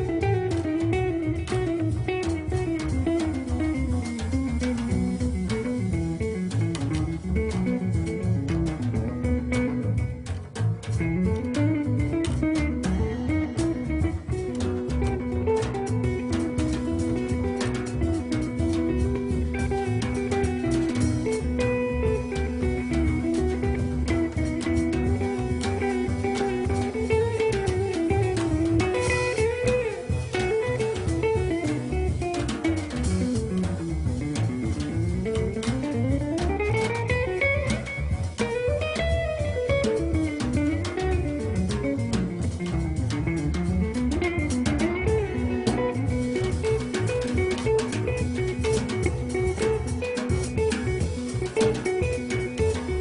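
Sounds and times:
double bass: 0:00.0 - 0:53.0
drum kit: 0:00.0 - 0:53.0
plucked jazz guitar: 0:00.0 - 0:53.0.

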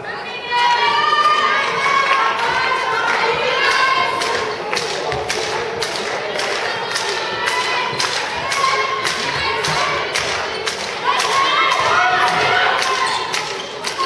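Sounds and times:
players shouting: 0:06.2 - 0:14.0.

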